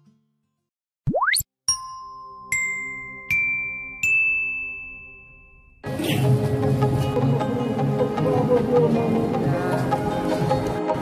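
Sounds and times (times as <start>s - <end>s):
cartoonish tone sweeping upward: 1.1s - 1.4s.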